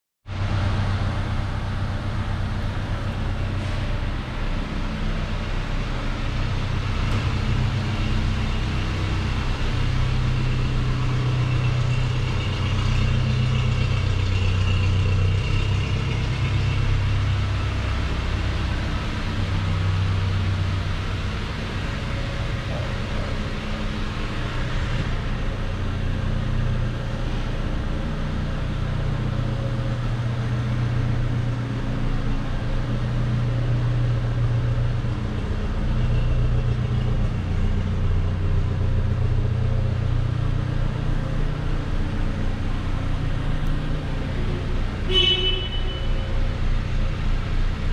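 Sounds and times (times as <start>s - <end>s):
car engine idling: 17.0s - 47.9s.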